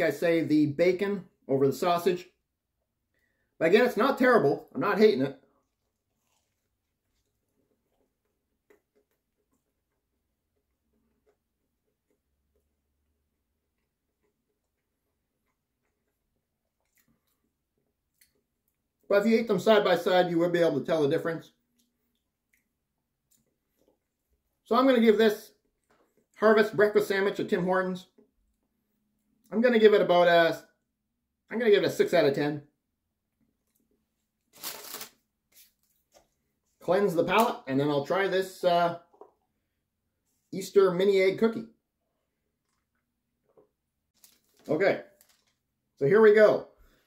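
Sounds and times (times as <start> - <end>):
faint chewing: 5.5 - 19.1, 21.5 - 24.6, 25.5 - 26.4, 33.4 - 36.8, 42.4 - 45.6
paper bag rustling: 34.5 - 35.9, 44.2 - 45.6.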